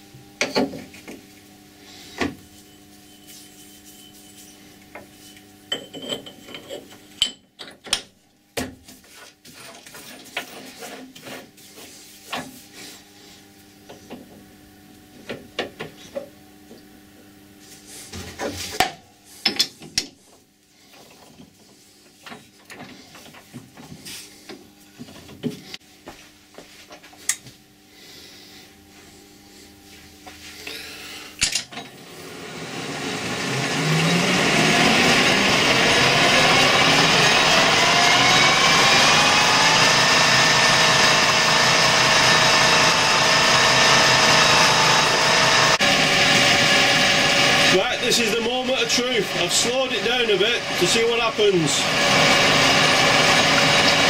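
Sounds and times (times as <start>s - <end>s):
lathe whine: 0.0s - 7.3s, 27.8s - 54.0s.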